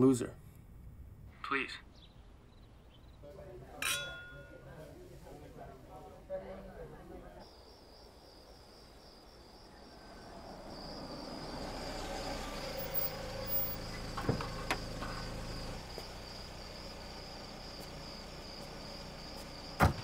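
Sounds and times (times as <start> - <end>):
crickets chirping: 0.0 - 20.0
car engine rumble: 9.5 - 20.0.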